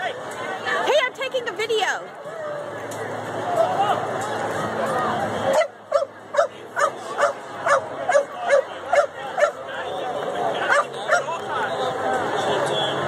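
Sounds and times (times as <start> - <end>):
crowd chatter: 0.0 - 13.0
dog barking: 5.6 - 9.6, 10.6 - 11.3.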